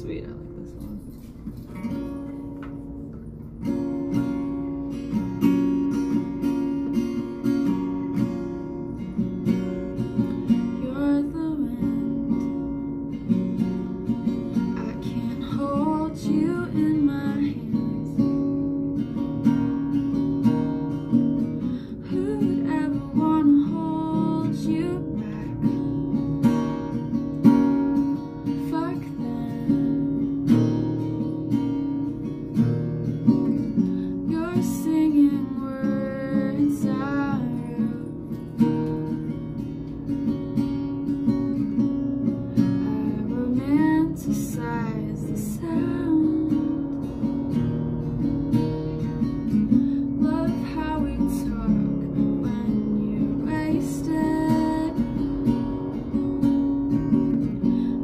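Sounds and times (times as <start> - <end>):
acoustic guitar strumming chords: 0.0 - 58.0.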